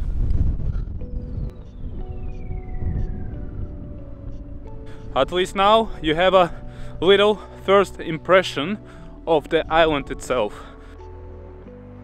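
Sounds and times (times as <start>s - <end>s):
wind buffeting microphone: 0.0s - 10.7s
background music with held tones: 0.0s - 12.0s
falling whistle-like glide: 1.1s - 4.0s.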